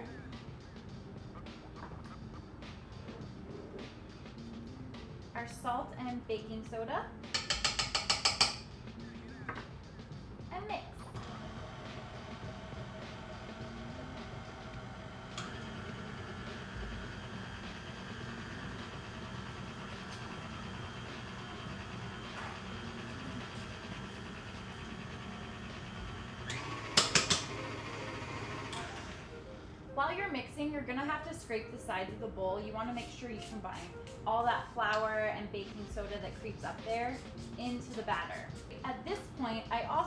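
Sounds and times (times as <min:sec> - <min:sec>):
stand mixer beating batter: 0:11.2 - 0:29.3.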